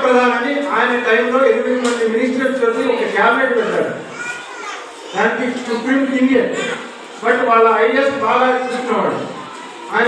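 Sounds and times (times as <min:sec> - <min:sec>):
speech in a large hall: 0:00.0 - 0:10.0
children's voices: 0:00.1 - 0:07.5, 0:08.1 - 0:10.0.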